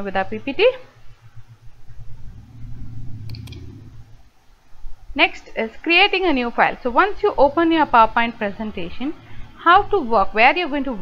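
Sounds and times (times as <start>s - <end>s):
low background rumble: 0.0s - 11.0s
computer mouse clicks: 3.2s - 3.7s.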